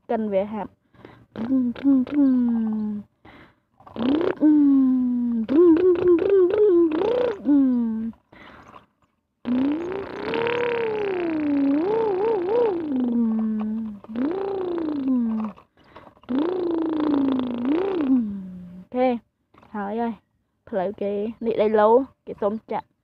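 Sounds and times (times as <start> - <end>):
person humming engine noises: 1.3 - 3.1, 4.0 - 8.2, 9.4 - 15.6, 16.3 - 18.9.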